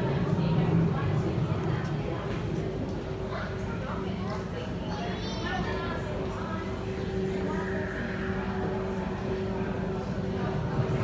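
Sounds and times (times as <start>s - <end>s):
low drone: 6.8s - 11.0s.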